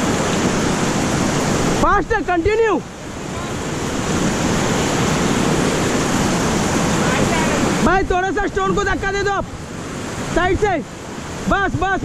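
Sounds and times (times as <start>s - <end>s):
white-water rapids roaring: 0.0s - 12.0s.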